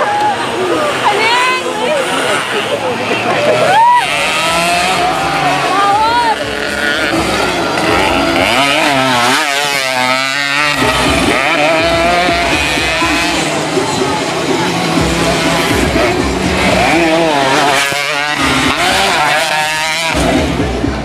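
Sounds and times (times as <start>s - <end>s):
motorcycle engines revving: 0.0s - 21.0s.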